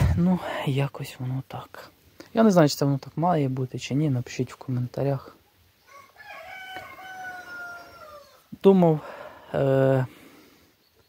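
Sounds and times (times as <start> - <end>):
rooster crowing: 5.8 - 8.5.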